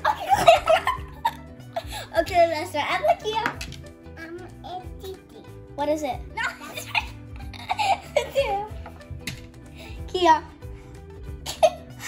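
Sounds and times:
girls giggling: 0.0s - 2.1s, 6.4s - 8.8s
background music: 0.0s - 12.0s.

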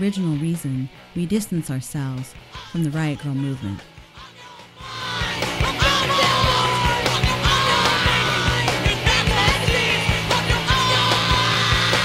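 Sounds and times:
hardcore punk music: 0.0s - 12.0s
yelled vocal: 2.4s - 12.0s.

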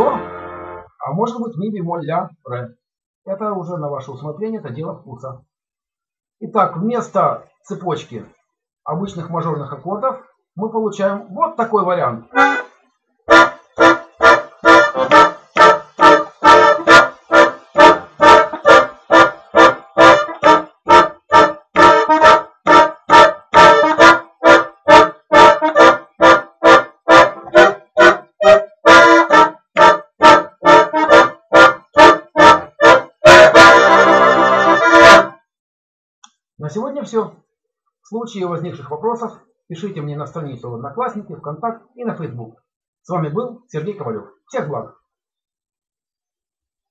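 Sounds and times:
button accordion staccato chords: 0.0s - 0.9s, 12.4s - 12.7s, 13.3s - 35.3s.

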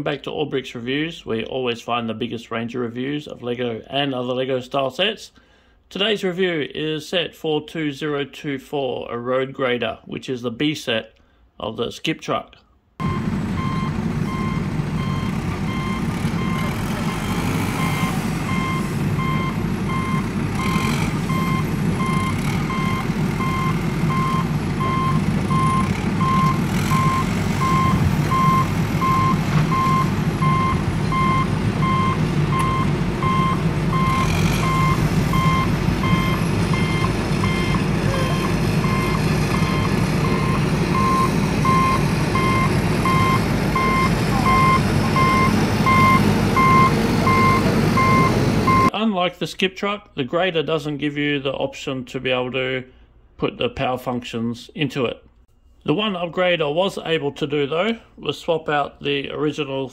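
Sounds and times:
reversing alarm beeping: 13.0s - 48.9s
truck engine rumbling: 13.0s - 48.9s.

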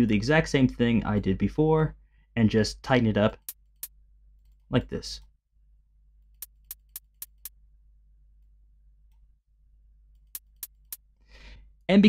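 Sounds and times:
closed hi-hat ticks: 6.4s - 7.6s, 10.2s - 11.1s.

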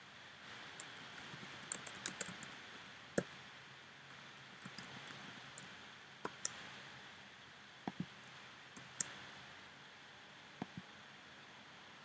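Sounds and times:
computer keyboard keystrokes: 0.8s - 2.6s, 4.6s - 5.7s, 6.3s - 6.6s, 8.8s - 9.2s.

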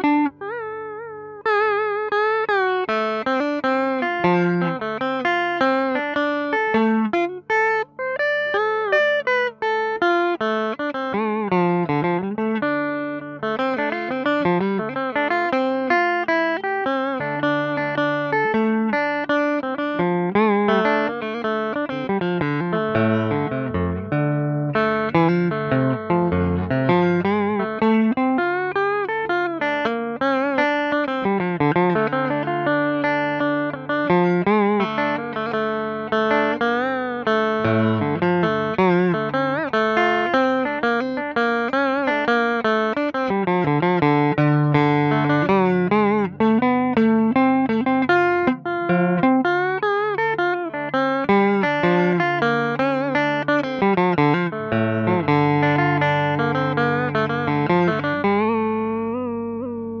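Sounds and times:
electric guitar solo with vibrato: 0.0s - 60.0s.

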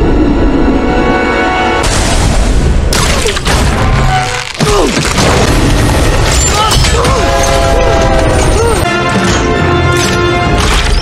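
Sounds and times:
film soundtrack music: 0.0s - 11.0s
booms and crashes: 1.8s - 8.5s.

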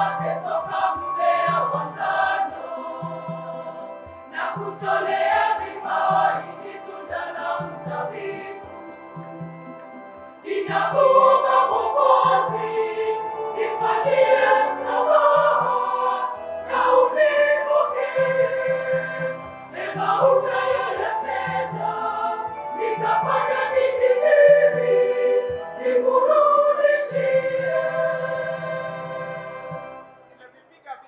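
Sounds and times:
choir singing slow song: 0.0s - 30.4s.

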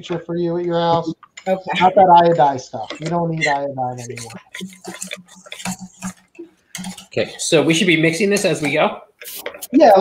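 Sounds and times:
whisk clinking against bowl: 2.8s - 8.8s.

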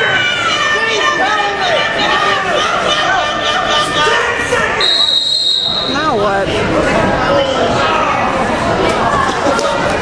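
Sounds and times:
spectators shouting: 0.0s - 6.1s
referee's whistle blast: 4.8s - 6.0s.

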